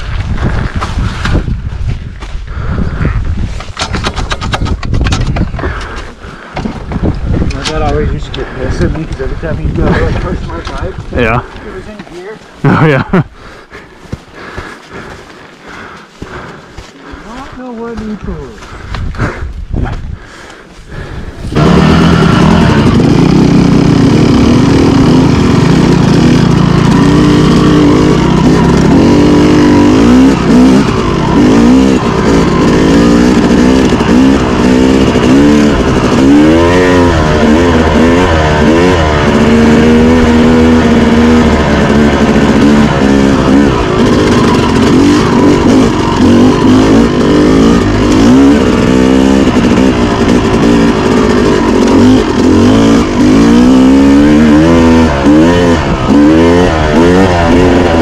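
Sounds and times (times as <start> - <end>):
dirt bike engine revving: 20.2 - 58.0.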